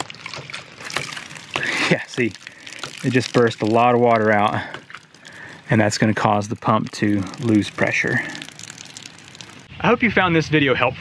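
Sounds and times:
water bursting out: 0.0s - 9.7s
water hissing and splashing: 0.0s - 9.7s.

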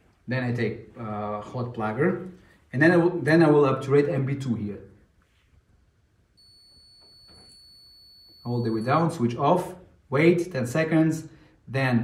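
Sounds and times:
high-pitched electronic tone: 6.4s - 9.2s.

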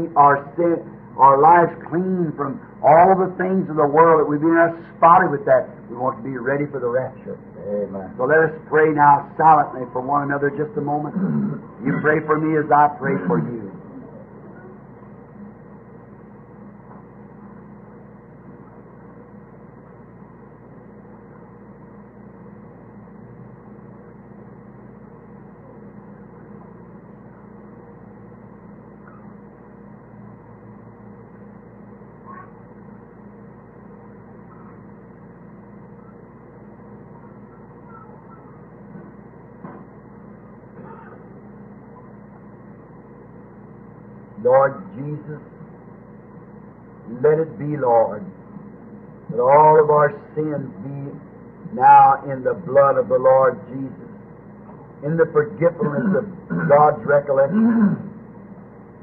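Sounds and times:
low hum and hiss: 0.0s - 59.0s.

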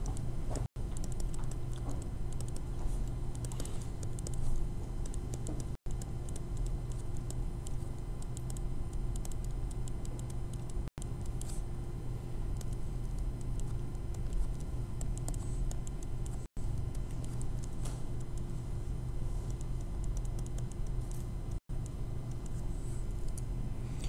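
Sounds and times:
low electrical hum: 0.0s - 24.0s.

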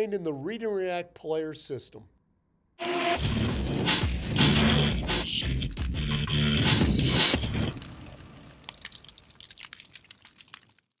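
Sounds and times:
fire crackling: 7.5s - 11.0s.

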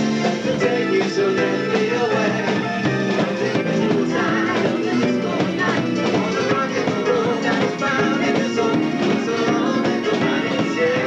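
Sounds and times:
drum kit beat: 0.0s - 11.0s
electric guitar: 0.0s - 11.0s.

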